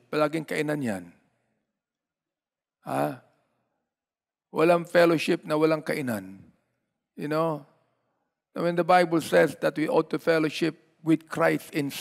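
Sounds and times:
man speaking: 0.0s - 1.2s, 2.8s - 3.4s, 4.5s - 6.5s, 7.1s - 7.8s, 8.5s - 12.0s.

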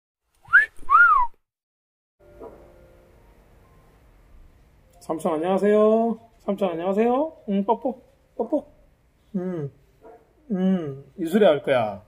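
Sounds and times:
two-note wolf whistle: 0.5s - 1.4s.

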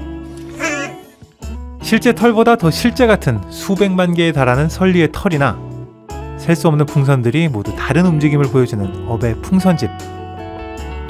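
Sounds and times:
soft background music: 0.0s - 11.0s
robot voice chirp: 0.6s - 1.0s.

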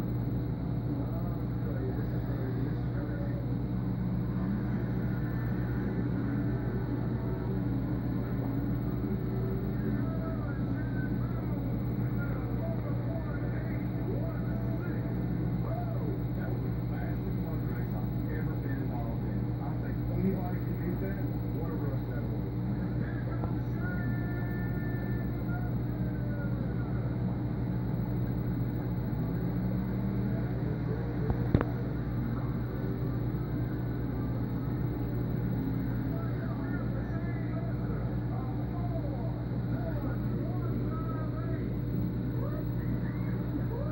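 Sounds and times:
aquarium air pump humming: 0.0s - 43.9s
faint voices: 0.0s - 43.9s.

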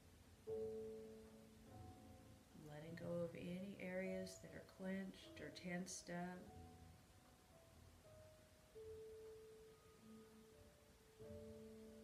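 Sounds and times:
soft meditation music tones: 0.0s - 12.0s.

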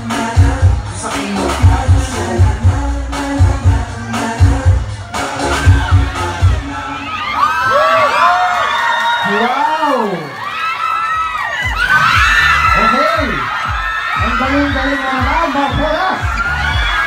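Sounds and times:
dance music with heavy bass: 0.0s - 7.4s, 11.6s - 17.0s
crowd screaming and cheering: 0.0s - 17.0s.

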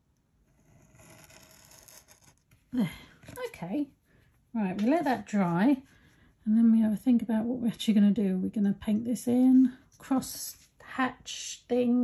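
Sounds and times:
pen nib scratching on card: 0.6s - 2.4s.

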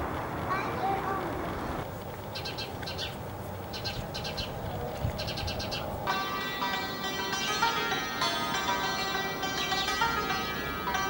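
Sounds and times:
santur playing struck notes: 6.1s - 11.0s.

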